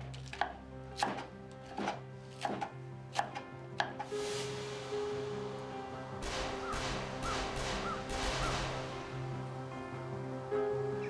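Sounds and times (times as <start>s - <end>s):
soft background music: 0.0s - 11.0s
knife chopping on wooden board: 0.2s - 4.0s.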